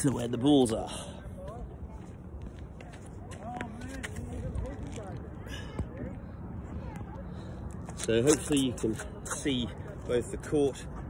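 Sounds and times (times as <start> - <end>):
faint distant voices: 0.7 - 11.0.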